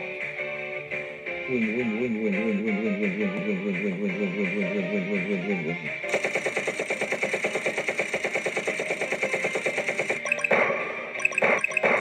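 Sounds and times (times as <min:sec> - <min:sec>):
trailer music: 0:01.9 - 0:12.0
rapid machine-gun-like rattling: 0:06.1 - 0:10.7, 0:11.3 - 0:12.0
sharp bursts: 0:06.1 - 0:12.0.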